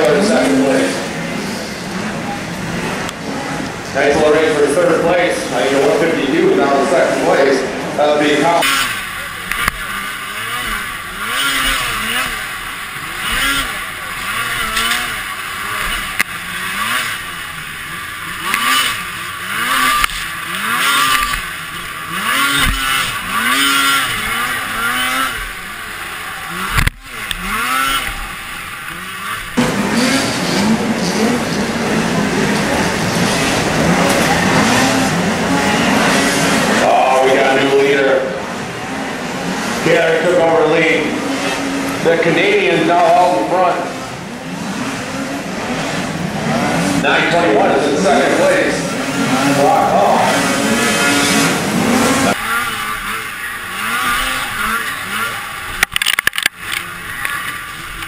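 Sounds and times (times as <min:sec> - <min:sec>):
snowmobile engine revving: 0:00.0 - 0:58.0
snowmobiles racing: 0:00.0 - 0:58.0.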